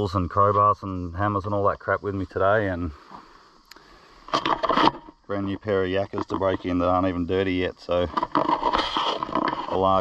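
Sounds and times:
faint click: 3.6s - 3.9s
scraping and rustling: 4.3s - 10.0s.

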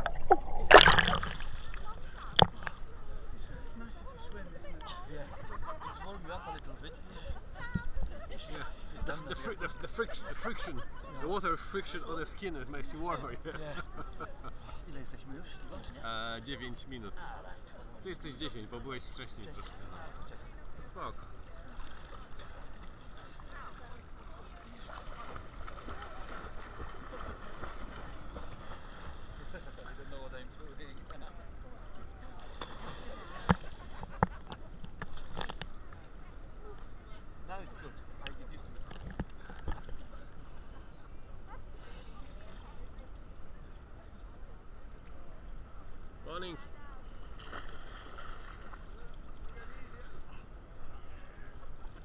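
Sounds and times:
water splash: 0.0s - 2.8s, 32.4s - 34.0s, 47.4s - 48.8s
water splashing and sloshing: 0.0s - 3.8s, 21.2s - 30.4s, 32.0s - 37.0s, 47.3s - 49.6s.

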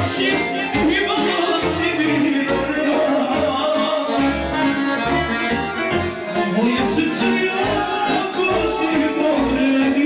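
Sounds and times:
accordion: 0.0s - 10.0s.

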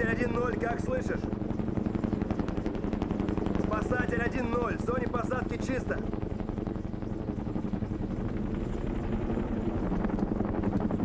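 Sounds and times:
helicopter rotors chopping: 0.0s - 11.0s.

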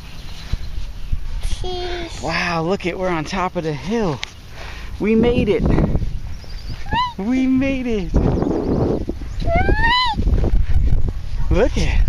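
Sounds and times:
wind rumbling on microphone: 0.0s - 3.2s, 4.1s - 12.0s
toddler squealing: 6.8s - 7.3s, 9.4s - 10.2s.

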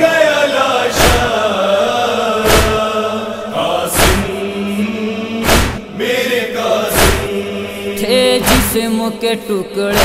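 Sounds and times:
chorus chanting a wavering melody: 0.0s - 10.0s
chest-beating thumps: 1.0s - 1.4s, 2.4s - 2.9s, 3.9s - 4.4s, 5.4s - 5.9s, 6.9s - 7.4s, 8.4s - 8.8s.

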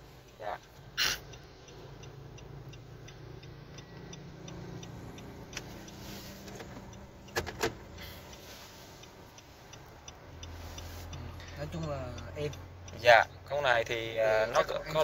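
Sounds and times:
diesel engine low hum: 0.0s - 15.0s
turn signal ticking: 0.0s - 15.0s.

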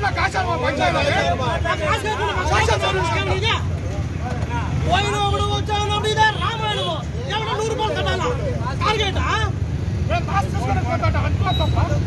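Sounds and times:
man shouting: 0.0s - 3.7s, 4.8s - 9.6s
men arguing: 0.0s - 12.0s
street traffic rumble: 0.0s - 12.0s.

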